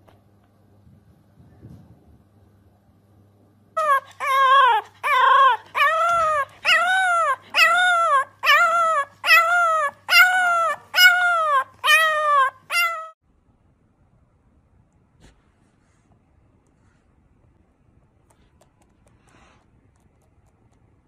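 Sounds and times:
animal high-pitched cries: 3.8s - 13.2s.

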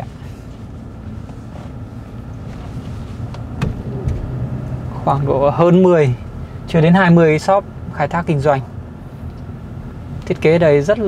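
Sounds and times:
vehicle engine and road rumble: 0.0s - 11.0s.

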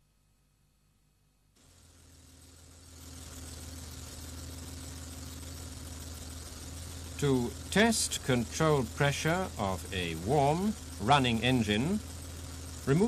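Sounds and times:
petrol engine idling: 1.6s - 13.0s.

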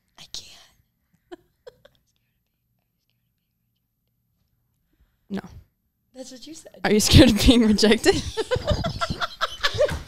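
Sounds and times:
girl whispering: 0.2s - 0.8s.

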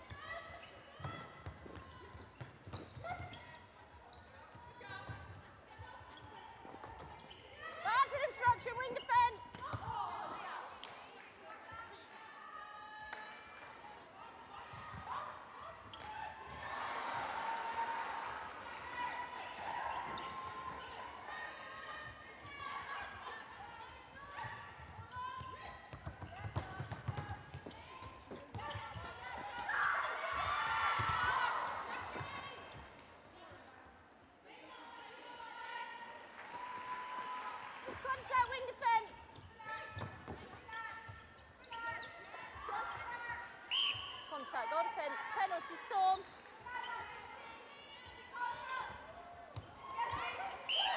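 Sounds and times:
spectators' voices echoing: 7.6s - 11.9s, 34.4s - 40.2s, 42.5s - 50.9s.

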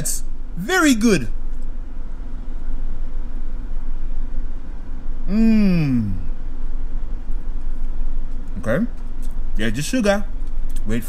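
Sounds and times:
person humming: 5.3s - 6.3s.

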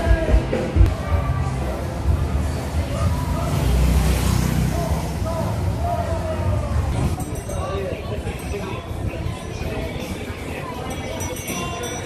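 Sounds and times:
people's voices: 0.0s - 12.0s
traffic rumble: 0.0s - 12.0s.

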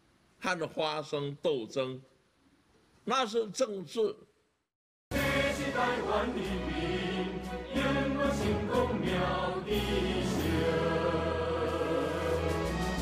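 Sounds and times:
choir singing held notes: 5.1s - 13.0s.

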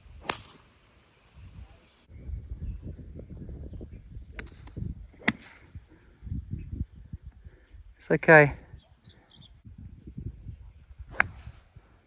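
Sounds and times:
wind buffeting microphone: 1.4s - 8.0s, 8.6s - 12.0s.

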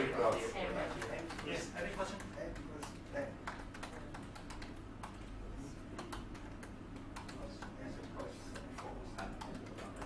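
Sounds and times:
laptop keyboard typing: 0.0s - 10.0s.

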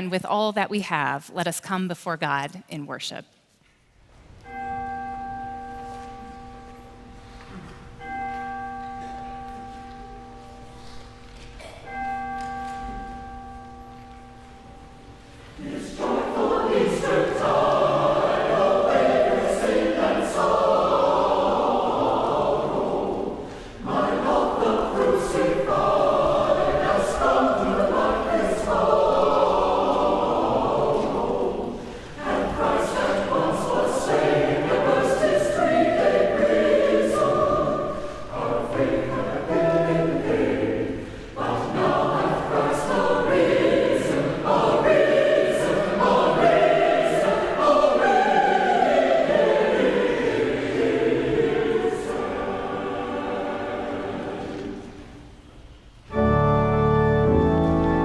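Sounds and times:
church choir singing: 4.4s - 58.0s.

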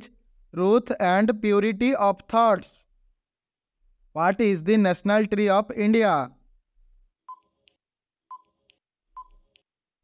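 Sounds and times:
faint electronic beeps: 7.3s - 9.7s.

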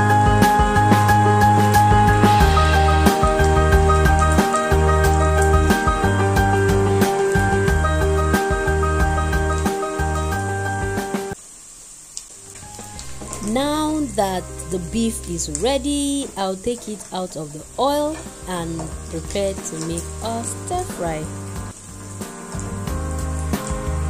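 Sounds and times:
background music: 0.0s - 11.4s, 12.4s - 24.0s
meat sizzling in oil: 0.0s - 24.0s
person speaking: 13.4s - 21.3s.

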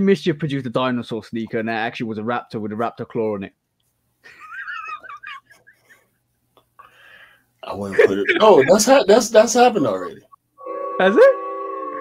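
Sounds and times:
breathy chuckles: 4.3s - 6.0s
man giggling high-pitched: 4.3s - 6.0s, 7.9s - 8.9s.

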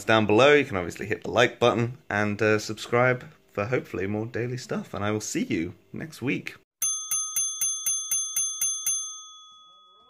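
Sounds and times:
small bell struck rapidly: 6.8s - 10.0s.

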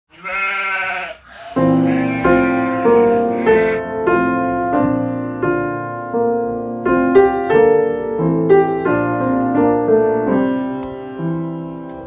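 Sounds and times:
sheep bleating: 0.1s - 3.8s
piano chords: 1.4s - 12.0s.

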